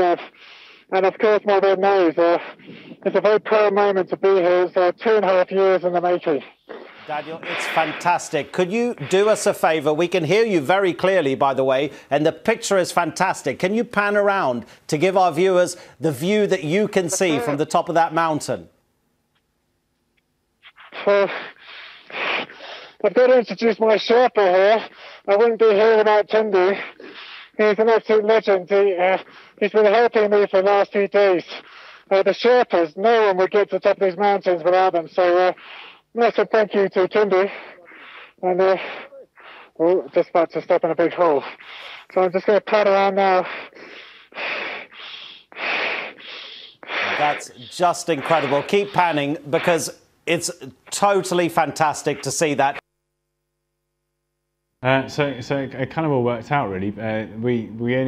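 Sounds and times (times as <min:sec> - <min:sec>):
man's voice: 0:00.0 - 0:00.3, 0:00.9 - 0:18.7, 0:38.4 - 0:38.9, 0:47.1 - 0:52.8
breathy sounds: 0:02.4 - 0:03.1, 0:06.4 - 0:09.4, 0:15.7 - 0:16.0, 0:20.6 - 0:23.0, 0:37.4 - 0:39.9, 0:41.2 - 0:42.2, 0:43.4 - 0:50.0.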